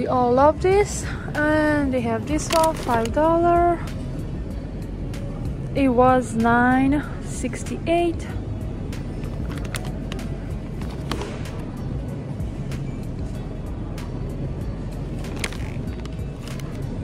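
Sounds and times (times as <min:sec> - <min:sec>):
faint music: 0:00.0 - 0:17.0
store background noise: 0:00.0 - 0:17.0
plastic bag crinkling: 0:02.4 - 0:03.1, 0:15.2 - 0:16.8.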